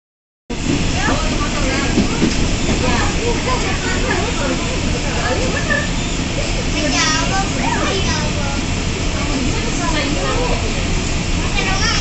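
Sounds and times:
train rumble and hiss: 0.5 - 12.0
indistinct voices talking: 0.6 - 12.0.

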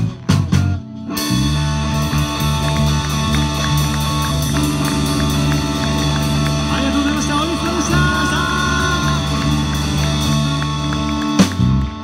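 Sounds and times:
drum kit: 0.0 - 12.0
electric bass: 0.0 - 12.0
electric guitar: 0.0 - 12.0.

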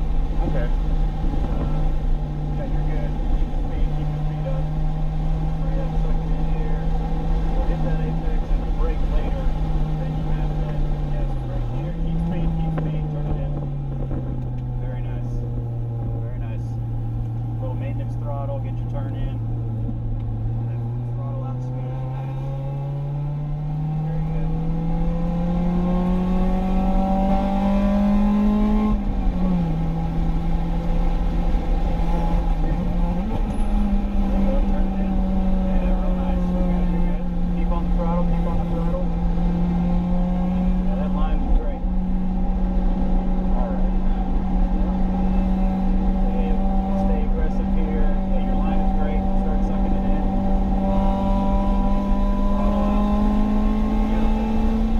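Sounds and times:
car engine revving: 0.0 - 54.9.

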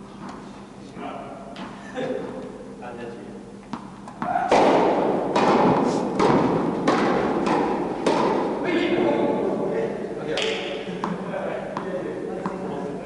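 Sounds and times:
tennis ball bounces: 3.7 - 8.6, 11.8 - 12.7
tennis racket strikes: 3.7 - 8.6.

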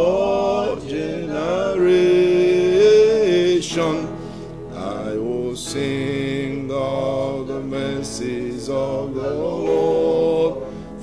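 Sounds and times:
man singing gospel song: 0.0 - 11.0.

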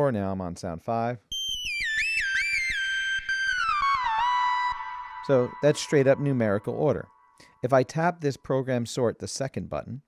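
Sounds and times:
synthesizer lead gliding between notes: 1.7 - 7.4.

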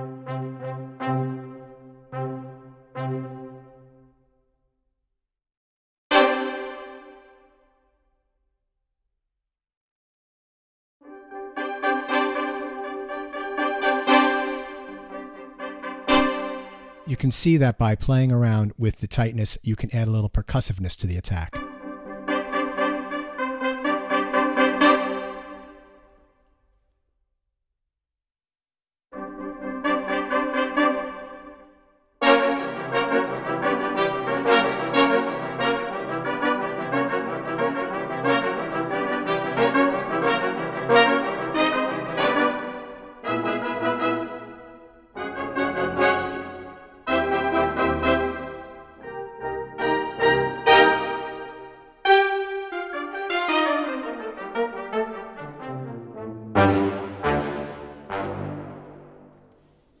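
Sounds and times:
brass staccato chord stabs: 11.1 - 18.6, 32.2 - 59.4.

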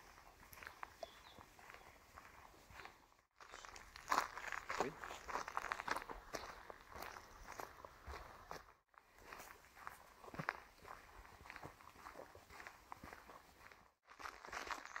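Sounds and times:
footsteps on dirt path: 0.0 - 15.0.

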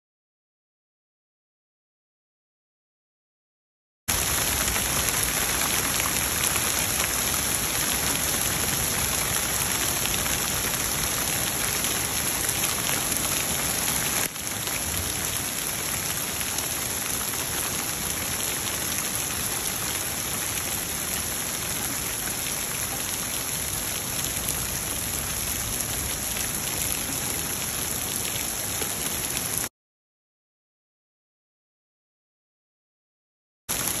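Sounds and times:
heavy rain and hail on wood: 4.1 - 19.8.

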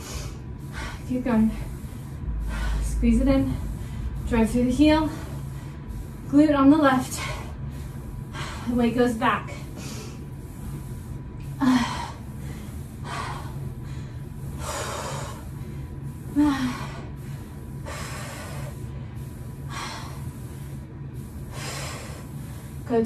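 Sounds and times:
woman breathing hard: 0.0 - 6.3, 6.9 - 22.9
steady low hum: 0.0 - 23.0.

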